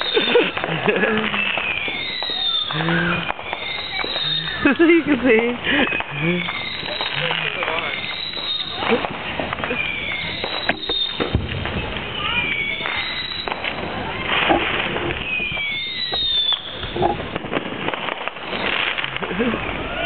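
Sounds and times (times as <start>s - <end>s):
firework bangs and pops: 0.0s - 20.0s
whistling fireworks: 0.0s - 20.0s.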